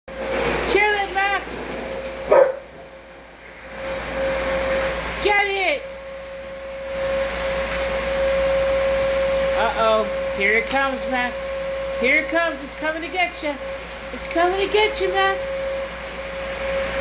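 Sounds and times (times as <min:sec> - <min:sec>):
vacuum cleaner whine: 0:00.1 - 0:17.0
dog barking: 0:02.3 - 0:02.7.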